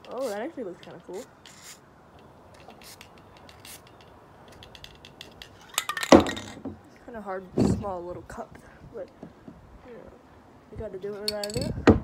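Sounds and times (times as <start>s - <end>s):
spray can hissing: 0.0s - 0.5s, 2.6s - 5.0s
spray can being shaken: 0.0s - 1.8s, 2.6s - 6.1s
spray can clicking and rattling: 0.0s - 6.5s.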